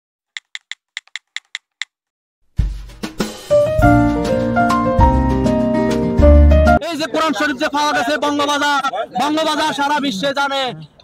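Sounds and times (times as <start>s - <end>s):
keyboard typing clicks: 0.4s - 1.9s.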